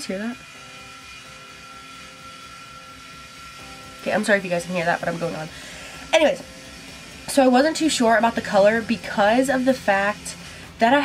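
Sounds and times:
machine hum with high whine: 0:00.0 - 0:11.0.

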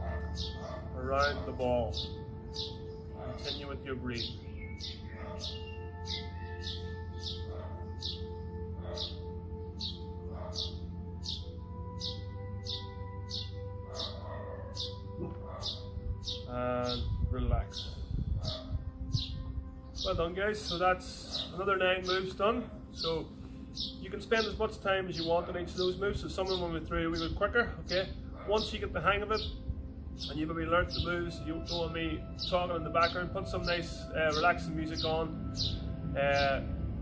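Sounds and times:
bird chirping: 0:00.0 - 0:37.0
calm music of held tones: 0:00.0 - 0:37.0.

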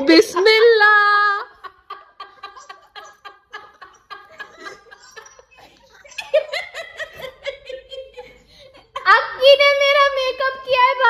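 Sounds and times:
high-pitched laughter: 0:01.4 - 0:09.2.

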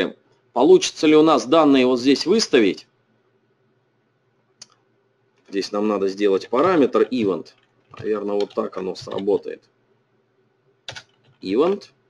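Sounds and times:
faint room hiss: 0:00.0 - 0:12.0
computer click: 0:10.9 - 0:11.4.

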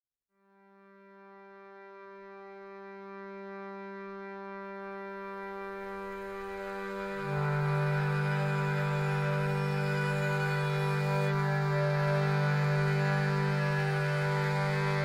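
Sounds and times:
held drone note: 0:05.3 - 0:15.0.

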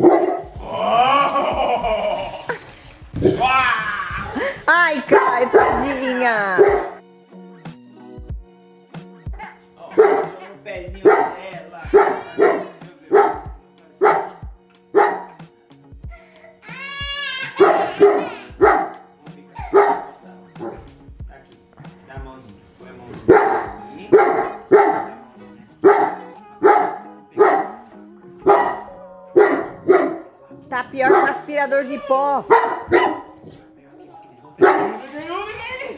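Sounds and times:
dog barking: 0:00.0 - 0:00.5, 0:05.1 - 0:07.0, 0:09.9 - 0:10.4, 0:11.0 - 0:14.4, 0:15.0 - 0:15.4, 0:17.6 - 0:19.0, 0:19.6 - 0:20.9, 0:23.2 - 0:25.2, 0:25.8 - 0:27.8, 0:28.4 - 0:30.3, 0:31.0 - 0:31.8, 0:32.4 - 0:35.2.

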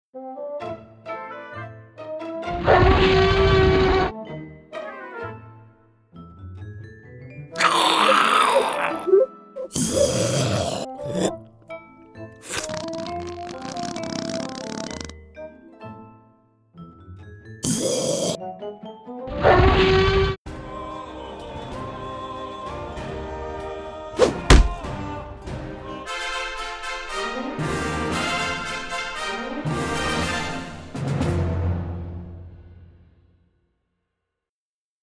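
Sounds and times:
background music with held notes: 0:00.1 - 0:02.7, 0:03.9 - 0:07.9, 0:08.6 - 0:13.8, 0:14.8 - 0:19.5, 0:20.5 - 0:33.3
dinosaur growl: 0:07.6 - 0:09.2, 0:09.8 - 0:11.4
short grunt: 0:09.7 - 0:11.4, 0:17.6 - 0:18.4
loud deep thud: 0:24.2 - 0:24.9.

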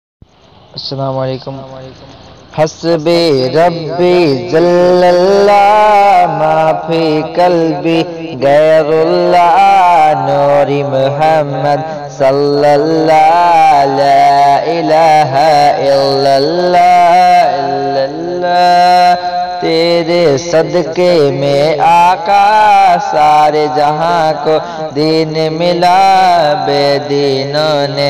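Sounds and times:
man singing: 0:02.6 - 0:28.0.

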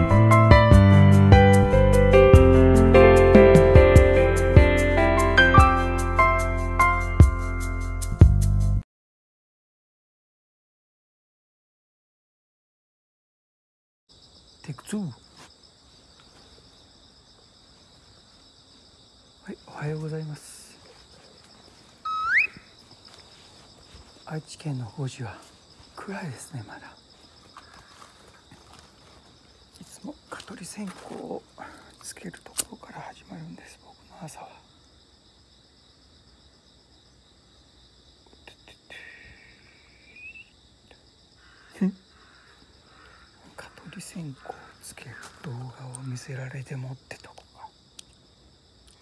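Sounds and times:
high-pitched insect chorus: 0:14.1 - 0:49.0.

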